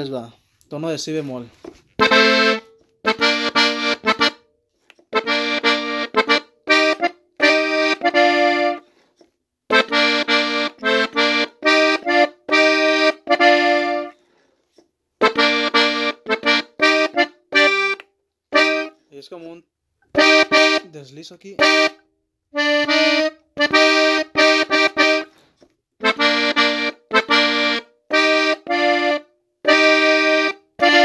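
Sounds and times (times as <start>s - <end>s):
button accordion melody: 2.0s - 4.5s, 5.1s - 9.1s, 9.7s - 14.3s, 15.2s - 19.0s, 20.1s - 31.0s.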